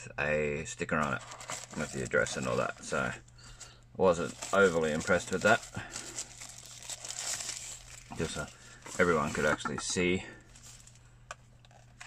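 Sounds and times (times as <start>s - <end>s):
plastic bag crinkling: 1.0s - 12.0s.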